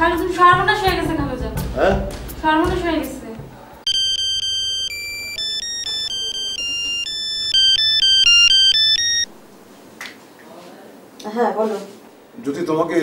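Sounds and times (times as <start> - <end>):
mobile phone ringtone: 3.9 - 9.4.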